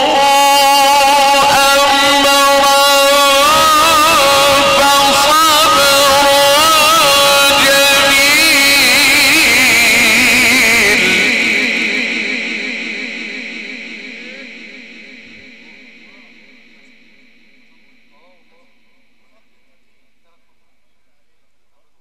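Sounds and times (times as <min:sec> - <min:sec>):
loudspeaker echo: 0:00.0 - 0:22.0
man reciting over loudspeaker: 0:00.0 - 0:22.0.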